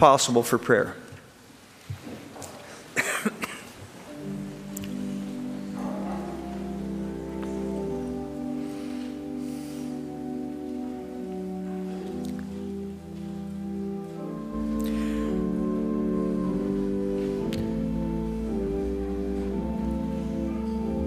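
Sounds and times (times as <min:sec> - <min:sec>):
man coughing: 0:03.0 - 0:03.8
pipe organ chords: 0:04.1 - 0:21.0.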